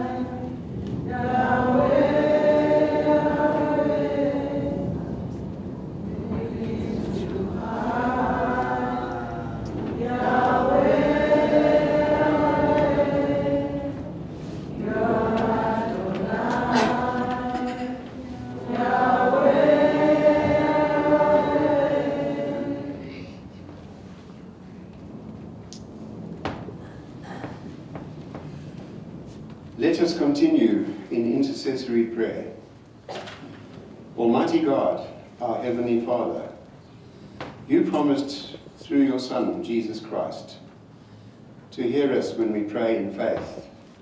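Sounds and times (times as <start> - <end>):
congregation singing: 0.0 - 24.3
man reading aloud into microphone: 29.8 - 32.6, 34.2 - 36.6, 37.7 - 40.7, 41.7 - 43.8.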